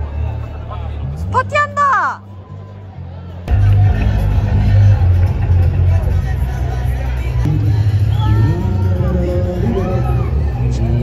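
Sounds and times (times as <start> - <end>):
bass-heavy music: 0.0 - 11.0
large crowd chatter: 0.0 - 11.0.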